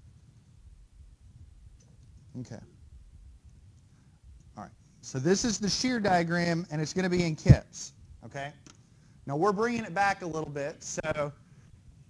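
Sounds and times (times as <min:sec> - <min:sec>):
low steady room hum: 0:00.0 - 0:12.0
man speaking: 0:02.4 - 0:02.7, 0:04.6 - 0:08.6, 0:09.3 - 0:11.4.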